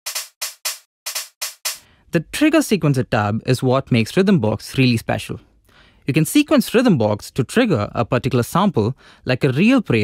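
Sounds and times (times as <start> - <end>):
electronic drum pattern: 0.0 - 1.8.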